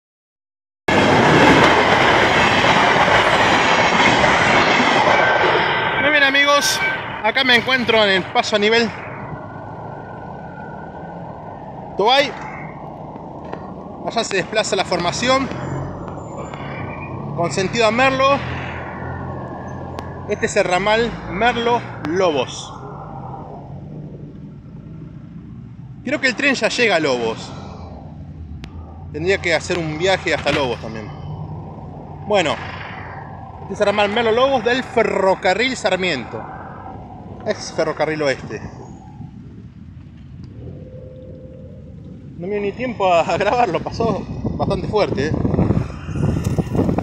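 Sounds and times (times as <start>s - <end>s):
train wheels on rails: 0.9s - 8.0s
distant train rumble: 0.9s - 47.0s.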